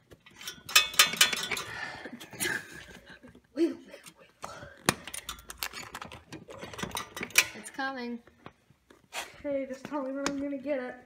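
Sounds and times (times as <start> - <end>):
metal clinks and clicks: 0.1 - 1.8, 5.0 - 7.8.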